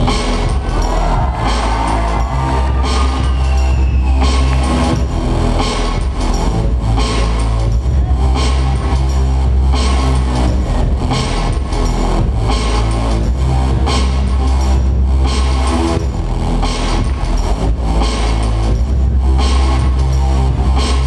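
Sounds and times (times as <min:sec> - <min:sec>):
loud dance music with heavy bass: 0:00.0 - 0:21.0.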